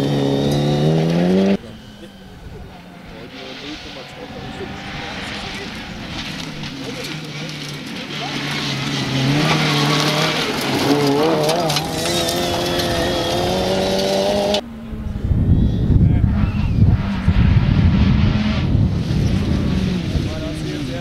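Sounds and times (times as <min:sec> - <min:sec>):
car rumbling on gravel: 0:00.0 - 0:21.0
rally car engine accelerating: 0:00.0 - 0:21.0.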